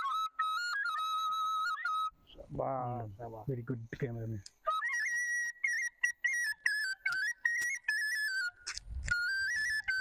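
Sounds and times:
flute playing folk melody: 0.0s - 2.4s, 4.6s - 10.0s.

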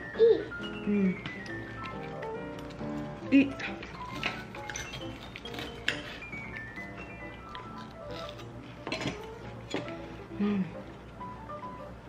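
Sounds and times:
background music: 0.0s - 12.0s
knife and fork clinking on plate: 3.6s - 6.6s, 7.8s - 9.9s.

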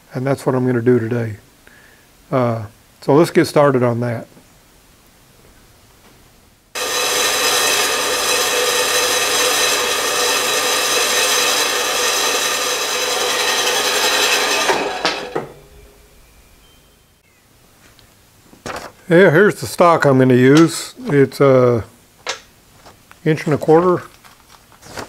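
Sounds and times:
band saw cutting metal: 6.8s - 16.2s.

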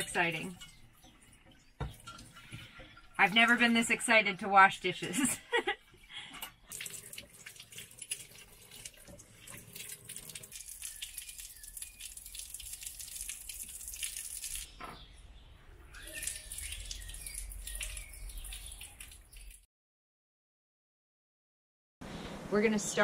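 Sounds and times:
running water from tap: 0.0s - 14.7s, 16.0s - 19.6s
drain water splashing: 0.0s - 14.8s, 15.9s - 19.6s
dishes clattering: 0.4s - 4.0s.

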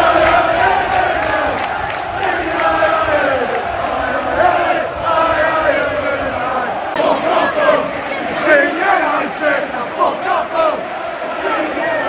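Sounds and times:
crowd chanting and shouting: 0.0s - 12.0s
nearby fans' voices: 0.0s - 12.0s.

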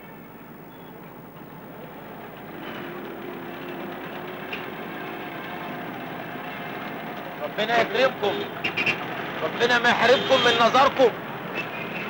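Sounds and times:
car engines running: 1.0s - 12.0s.

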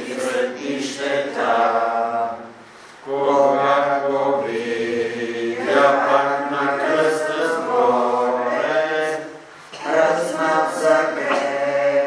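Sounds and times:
a cappella chant: 0.0s - 12.0s.

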